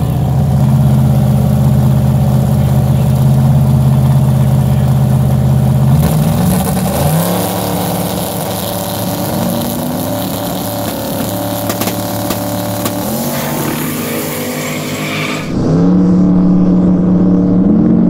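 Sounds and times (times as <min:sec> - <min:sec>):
drag race engines idling: 0:00.0 - 0:14.4
engine revving up: 0:06.0 - 0:18.0.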